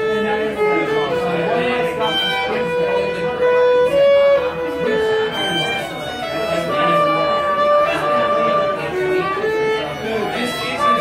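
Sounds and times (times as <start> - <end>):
solo fiddle melody: 0.0 - 11.0.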